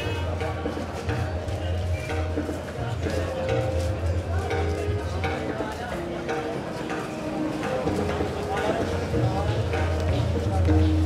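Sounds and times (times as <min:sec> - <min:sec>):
background music: 0:00.0 - 0:11.0
crowd of voices: 0:00.0 - 0:11.0.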